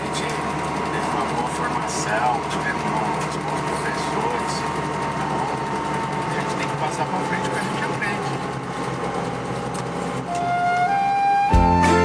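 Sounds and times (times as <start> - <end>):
car engine and road noise: 0.0 - 12.0
music: 10.3 - 12.0.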